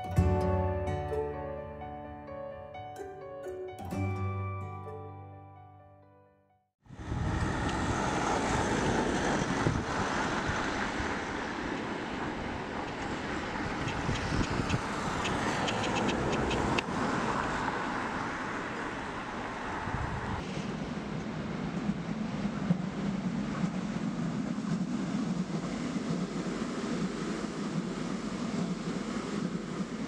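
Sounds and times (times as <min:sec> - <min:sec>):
road traffic noise: 0:06.9 - 0:30.0
train rumbling: 0:06.9 - 0:30.0.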